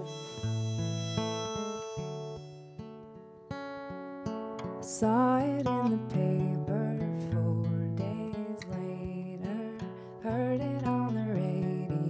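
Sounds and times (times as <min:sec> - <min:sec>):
harmonica held notes: 0:00.0 - 0:03.1
acoustic guitar strumming: 0:00.0 - 0:12.0.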